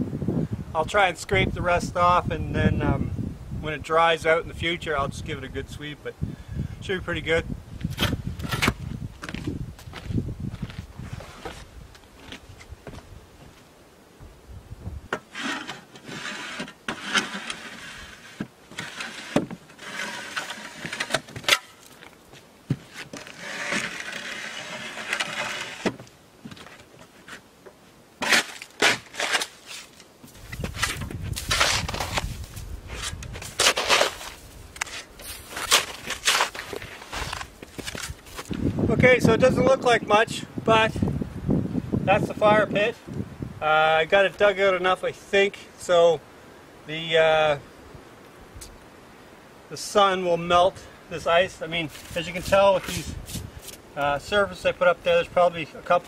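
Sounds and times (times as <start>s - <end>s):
shovel scraping ice off deck: 15.2s - 21.9s, 22.9s - 26.0s, 28.2s - 30.0s, 30.6s - 38.5s, 51.8s - 53.8s.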